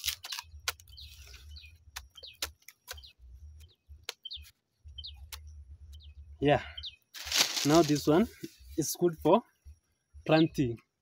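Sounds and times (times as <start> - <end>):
machete cutting roots: 0.0 - 1.0, 7.2 - 8.1.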